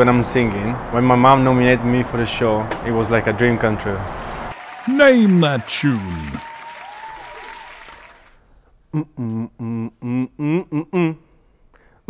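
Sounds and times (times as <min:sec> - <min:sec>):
recorded applause: 0:04.0 - 0:08.4
person speaking: 0:04.9 - 0:06.4.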